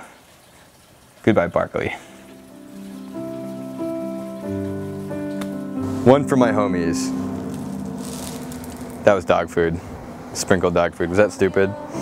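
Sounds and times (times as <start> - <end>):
slow sustained chords: 2.0 - 12.0.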